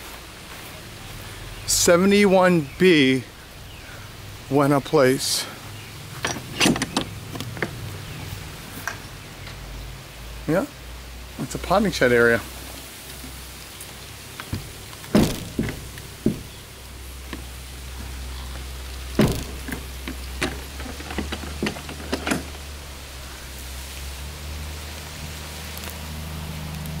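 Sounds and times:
wooden door knocks and clicks: 14.5s - 16.6s, 19.2s - 22.5s.

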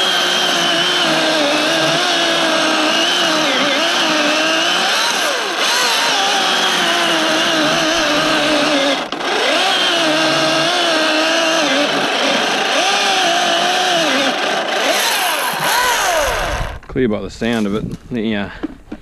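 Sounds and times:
electric chainsaw cutting log: 0.0s - 16.9s.

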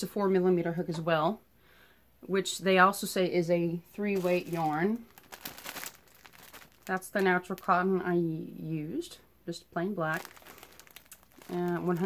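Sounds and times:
plastic wrapping crinkling: 4.0s - 7.9s, 10.0s - 12.0s.

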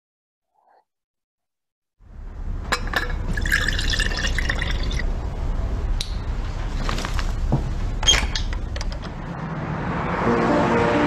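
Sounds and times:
juice pouring into a glass: 3.3s - 5.1s.

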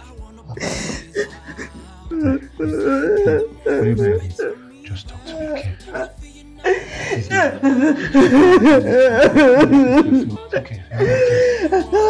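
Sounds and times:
person laughing: 0.6s - 4.4s, 5.2s - 12.0s.

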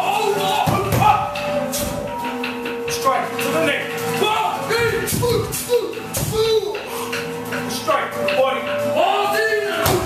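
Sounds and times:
men calling out: 0.0s - 1.7s, 3.0s - 8.0s.

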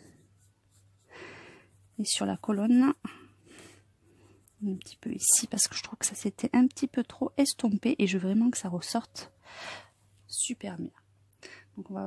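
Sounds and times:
pencil scratching on paper: 0.0s - 5.6s.

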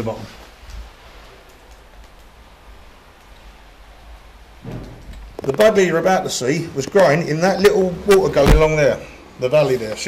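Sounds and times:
rain falling: 0.0s - 10.0s.

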